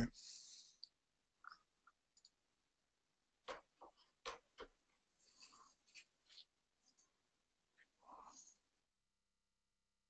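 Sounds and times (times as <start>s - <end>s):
soft rustle: 5.1s - 8.7s.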